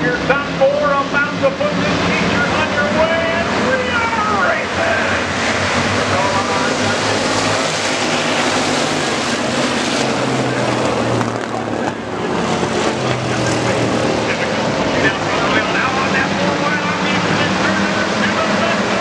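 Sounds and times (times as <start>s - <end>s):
stock car engines racing: 0.0s - 19.0s.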